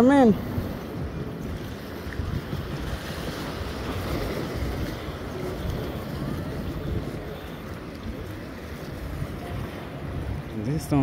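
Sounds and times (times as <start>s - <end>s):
wind buffeting microphone: 0.0s - 11.0s
small waves washing against rocks: 1.1s - 10.4s.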